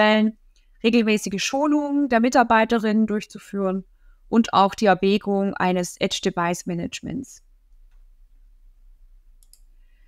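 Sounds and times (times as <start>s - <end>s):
faint click: 9.4s - 9.7s.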